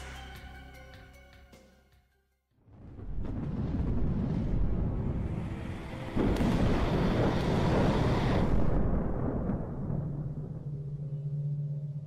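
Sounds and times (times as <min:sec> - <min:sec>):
deep rumbling sound effect: 0:02.7 - 0:12.0.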